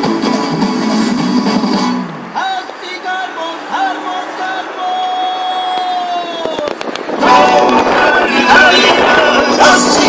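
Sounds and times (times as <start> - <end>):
music and singing through loudspeaker: 0.0 - 10.0
crackling pops: 5.7 - 7.8.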